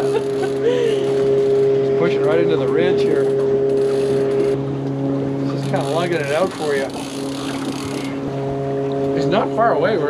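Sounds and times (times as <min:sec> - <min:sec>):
outboard motor running: 0:00.0 - 0:10.0.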